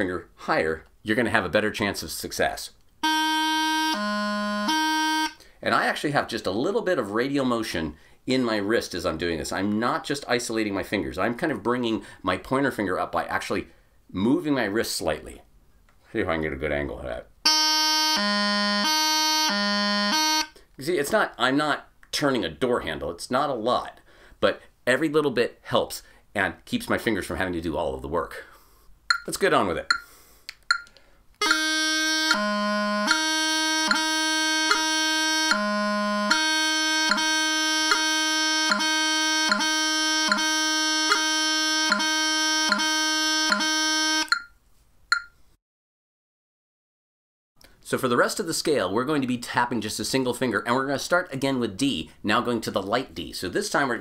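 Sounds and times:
bagpipe practice chanter playing: 3.0 - 5.4, 17.5 - 20.6, 31.4 - 44.3.

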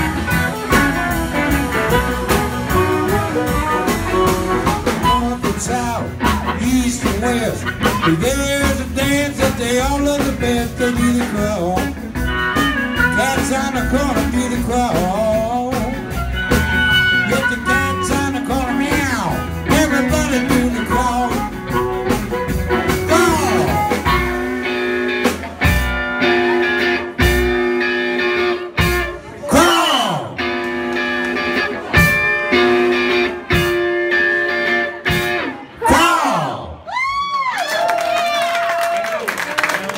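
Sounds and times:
amplified blues harmonica: 0.0 - 8.6, 10.8 - 14.1, 16.0 - 25.0
live blues band: 0.0 - 39.9.

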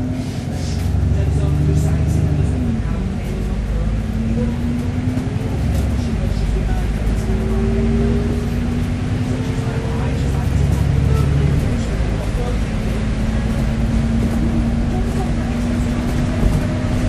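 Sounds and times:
bus engine rumble: 0.0 - 17.0.

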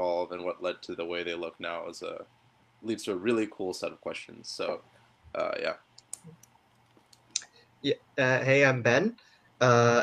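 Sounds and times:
person saying yeah: 0.0 - 2.2, 5.4 - 5.7.

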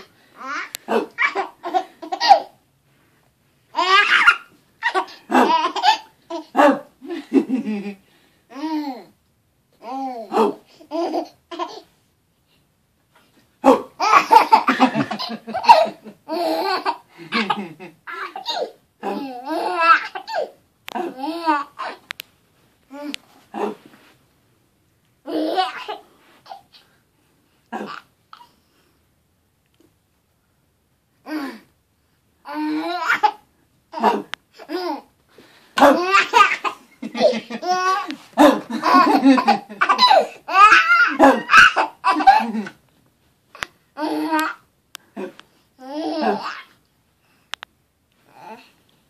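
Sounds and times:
baby laughing hysterically: 0.9 - 2.5, 3.8 - 7.8, 13.7 - 20.5, 35.8 - 42.7.

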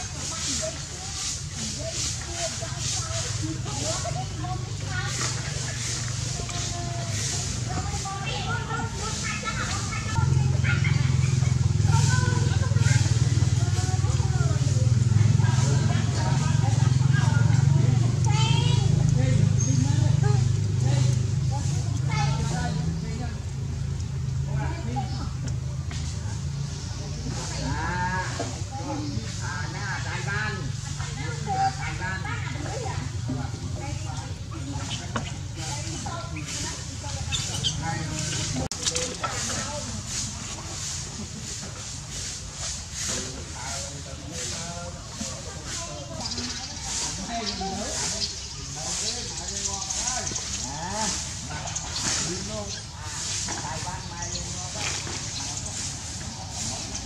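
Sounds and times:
voices talking: 0.0 - 57.0.

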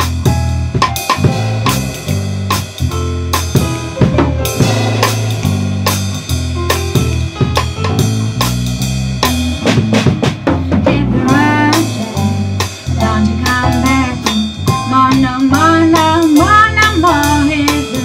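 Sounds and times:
drum kit with rimshots: 0.0 - 18.0
electric bass line: 0.0 - 18.0
melodic line with bending notes: 0.0 - 18.0.

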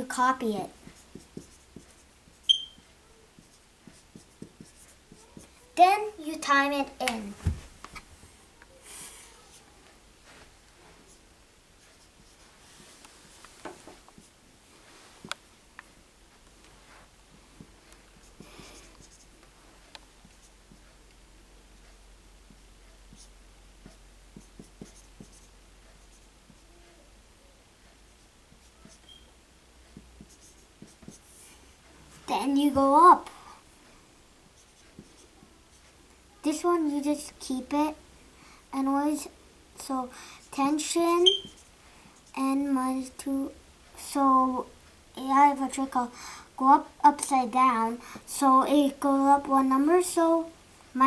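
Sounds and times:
marker writing on whiteboard: 0.0 - 7.3, 11.8 - 12.9, 13.6 - 14.4, 17.6 - 19.3, 20.2 - 20.9, 22.5 - 27.0, 27.8 - 31.4, 34.5 - 36.0, 40.5 - 42.5
high-pitched electronic beep: 2.5 - 2.8, 41.2 - 41.6
marker tip tapping: 2.5 - 2.8.

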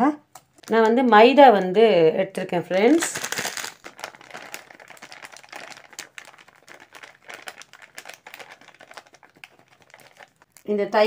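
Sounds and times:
plastic packet crinkling: 0.4 - 10.8.

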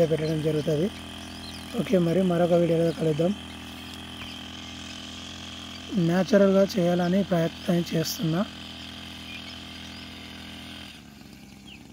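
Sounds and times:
small sprayer engine running: 0.0 - 11.9.

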